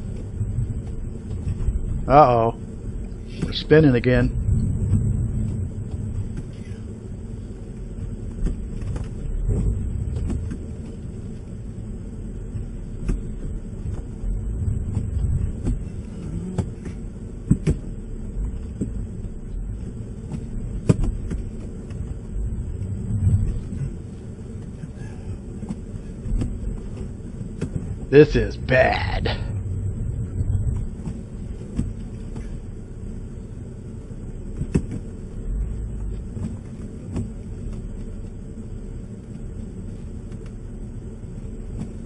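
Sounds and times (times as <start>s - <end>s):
car engine rumbling: 0.0s - 42.0s
tires spinning in snow: 0.0s - 42.0s.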